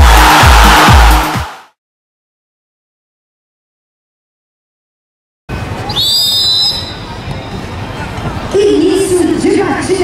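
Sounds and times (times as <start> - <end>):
crowd noise: 0.0 - 1.7, 5.5 - 10.0
referee's whistle blast: 5.9 - 7.1.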